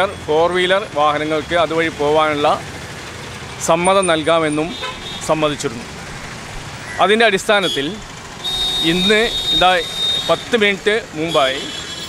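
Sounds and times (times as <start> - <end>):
passing road traffic: 0.0 - 12.0
man speaking: 3.6 - 5.9, 7.0 - 8.0, 8.7 - 11.8.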